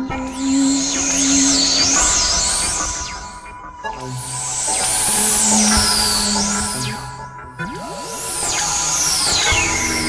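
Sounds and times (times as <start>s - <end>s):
high whistling synth tones: 0.0s - 10.0s
low synth drone: 0.0s - 10.0s.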